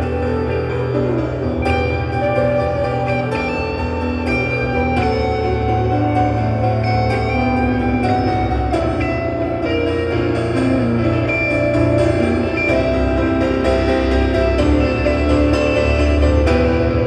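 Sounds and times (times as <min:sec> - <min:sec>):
piano and electric guitar jazz: 0:00.0 - 0:17.0.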